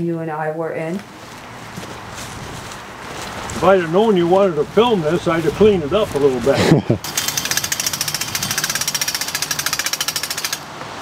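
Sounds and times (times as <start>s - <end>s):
drilling rig clattering: 5.1s - 10.7s.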